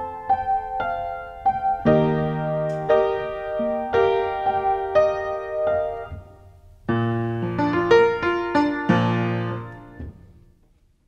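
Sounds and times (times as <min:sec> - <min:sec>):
upright piano playing: 0:00.0 - 0:10.5.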